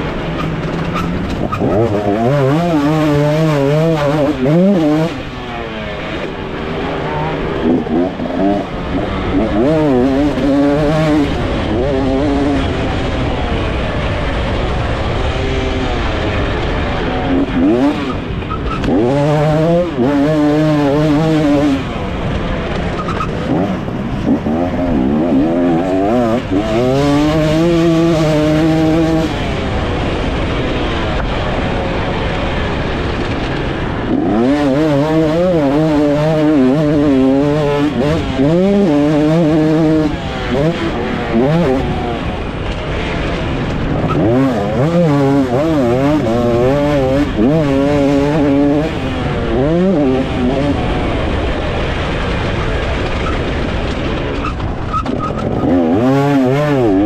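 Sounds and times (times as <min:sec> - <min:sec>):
motocross bike engine revving: 0:00.0 - 0:57.0
wind and riding noise: 0:00.0 - 0:57.0.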